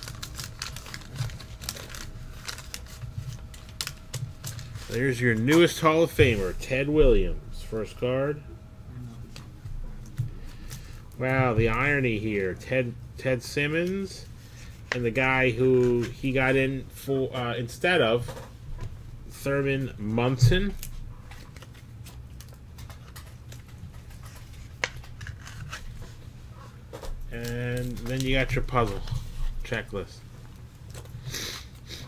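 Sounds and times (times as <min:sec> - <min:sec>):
plastic card sleeve rustling: 0:00.0 - 0:06.5, 0:20.8 - 0:26.2
steady low hum: 0:00.0 - 0:32.0
cardboard cards being shuffled: 0:20.8 - 0:26.2.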